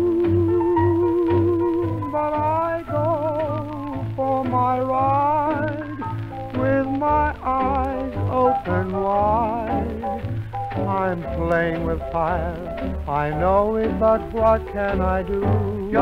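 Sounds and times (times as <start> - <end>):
muffled dance band music: 0.0 - 16.0.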